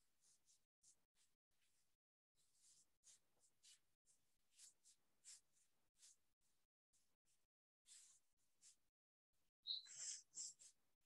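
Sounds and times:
sponge eraser wiping whiteboard: 0:07.9 - 0:08.8.

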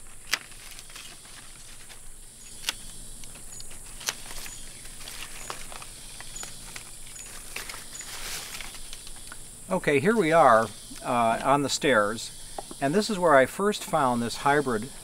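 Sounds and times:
high-pitched insect hum: 0:00.0 - 0:15.0.

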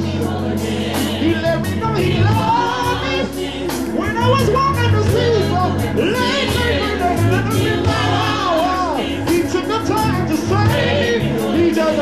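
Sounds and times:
backing choir: 0:00.0 - 0:12.0
bass and drum kit: 0:00.0 - 0:12.0
male lead singer: 0:01.0 - 0:12.0.

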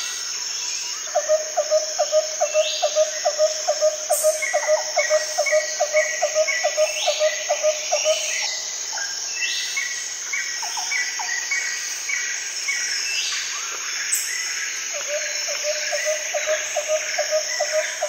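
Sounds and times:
insects buzzing: 0:00.0 - 0:18.0.

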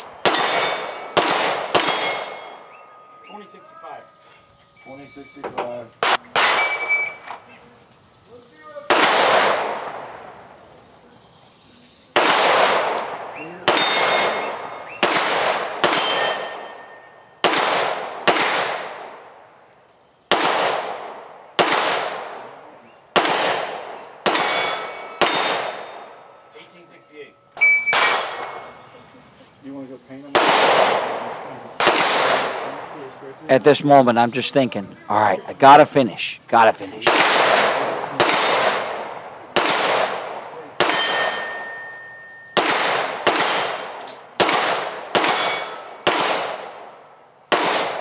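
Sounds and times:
pistol shots echoing: 0:00.0 - 0:02.8, 0:06.0 - 0:07.2, 0:08.8 - 0:10.4, 0:12.1 - 0:19.5, 0:20.3 - 0:26.4, 0:27.6 - 0:28.8, 0:30.2 - 0:33.0, 0:36.7 - 0:48.0
ringing of struck steel: 0:01.8 - 0:03.6, 0:16.0 - 0:17.2, 0:24.3 - 0:25.7, 0:40.8 - 0:42.6, 0:45.3 - 0:46.0.

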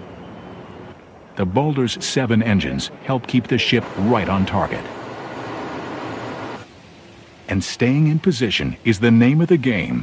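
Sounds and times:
faint hiss: 0:00.0 - 0:10.0
ship at sea rushing noise: 0:02.9 - 0:06.7.

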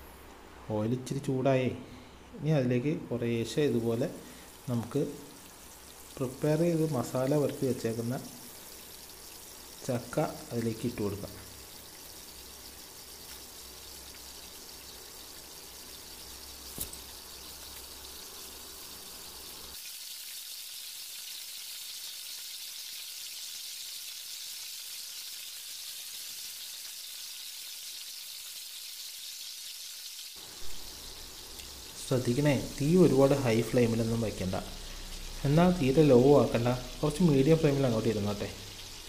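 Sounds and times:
food sizzling in oil: 0:03.2 - 0:39.0.

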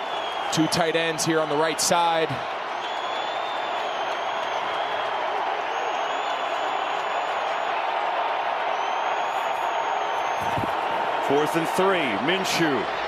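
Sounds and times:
stadium crowd roar: 0:00.0 - 0:13.0.

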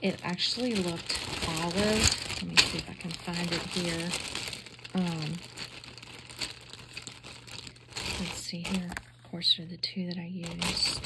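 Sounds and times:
paper rustling: 0:00.0 - 0:09.1, 0:10.4 - 0:11.0.

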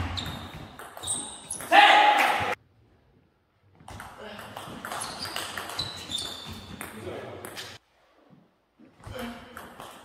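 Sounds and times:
short high squeaks: 0:00.1 - 0:01.7, 0:05.0 - 0:06.8.

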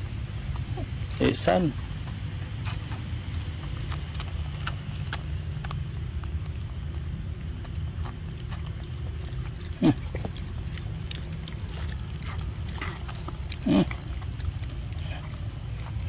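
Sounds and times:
steady low rumble: 0:00.0 - 0:16.0
monkey drinking through straw: 0:00.4 - 0:16.0.

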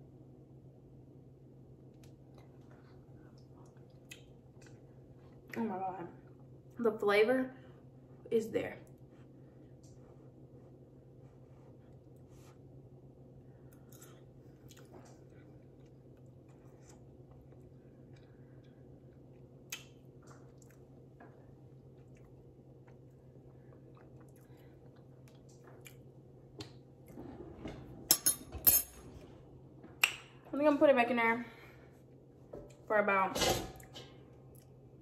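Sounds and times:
steady low hum: 0:00.0 - 0:35.0
quiet chewing: 0:13.6 - 0:26.8.

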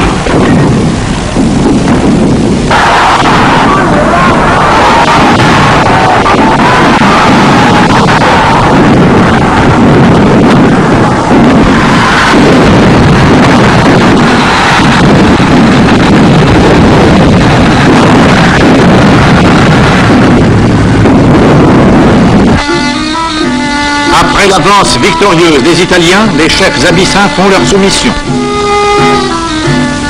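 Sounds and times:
battle roar of combat noise: 0:02.7 - 0:20.4
music: 0:22.5 - 0:30.0.

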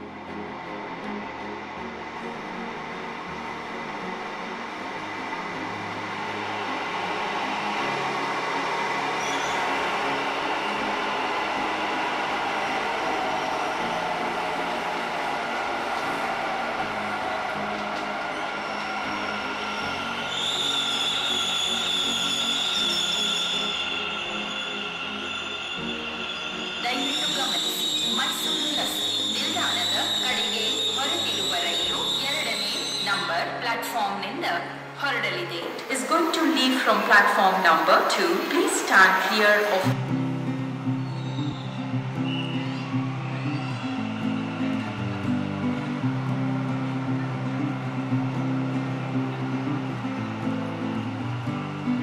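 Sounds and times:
train rumble: 0:00.0 - 0:33.3
train motor whine: 0:06.1 - 0:33.2
high brake squeal: 0:09.1 - 0:10.9, 0:18.3 - 0:33.5, 0:40.8 - 0:45.4.

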